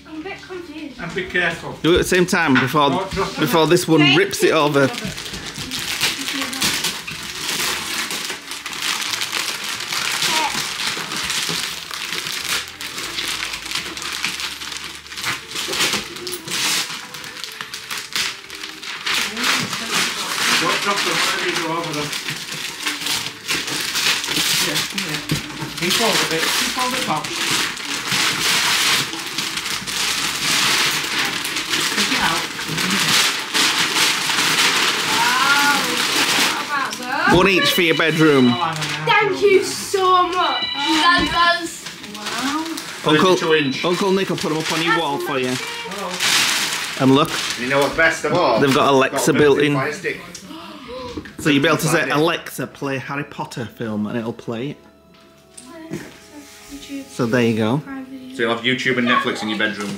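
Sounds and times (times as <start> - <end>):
gift wrap tearing and rustling: 1.9 - 54.7, 55.5 - 59.9.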